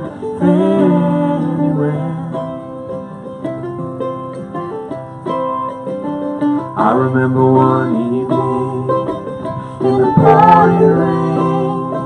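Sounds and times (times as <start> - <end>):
acoustic guitar: 0.0 - 12.0
picked lead melody: 0.0 - 12.0.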